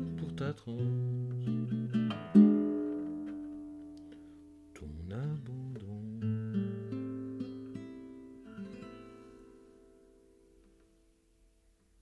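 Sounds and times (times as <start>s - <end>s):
classical guitar playing: 0.0s - 11.2s.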